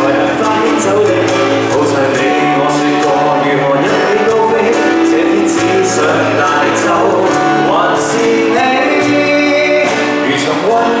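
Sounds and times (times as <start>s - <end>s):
live band playing a pop ballad: 0.0s - 11.0s
man singing lead vocal: 0.0s - 11.0s.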